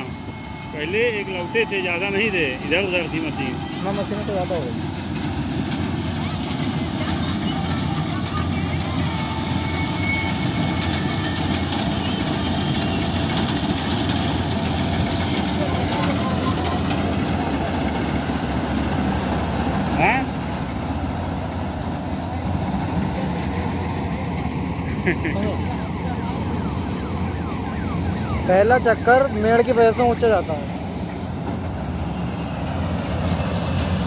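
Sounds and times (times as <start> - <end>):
combine harvester rumbling: 0.0 - 34.0.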